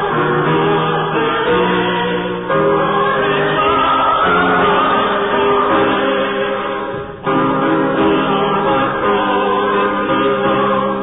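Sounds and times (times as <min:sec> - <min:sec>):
choir singing sustained chords: 0:00.0 - 0:11.0.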